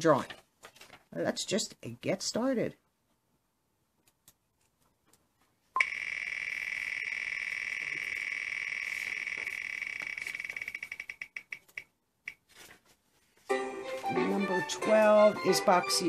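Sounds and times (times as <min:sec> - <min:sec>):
prize wheel ticking: 0:05.8 - 0:11.9.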